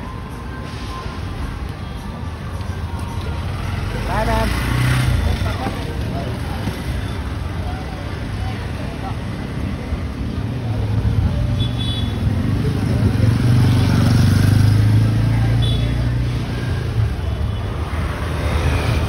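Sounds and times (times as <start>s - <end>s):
street traffic: 0.0s - 19.0s.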